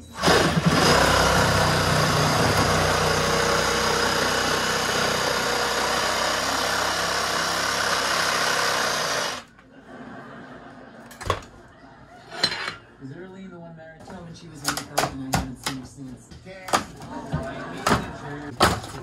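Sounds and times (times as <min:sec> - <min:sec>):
reciprocating saw cutting: 0:00.0 - 0:09.5.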